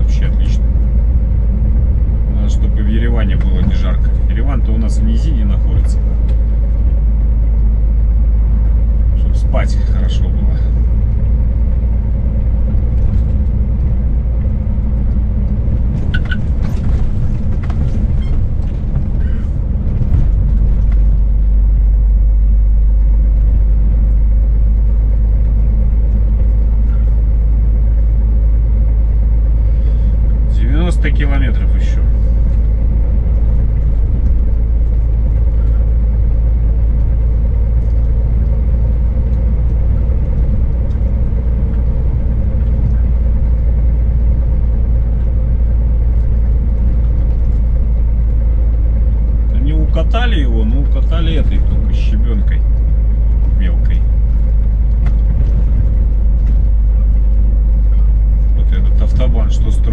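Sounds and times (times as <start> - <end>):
truck engine and tyres rumbling: 0.0 - 59.9.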